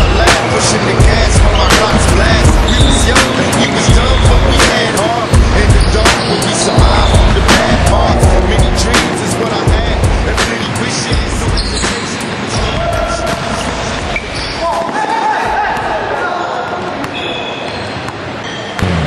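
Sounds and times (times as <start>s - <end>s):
sneaker squeaks: 1.0s - 7.8s, 10.6s - 19.0s.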